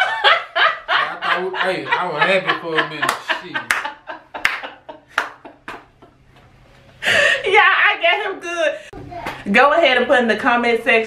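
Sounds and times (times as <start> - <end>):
hand claps: 3.0 - 5.9.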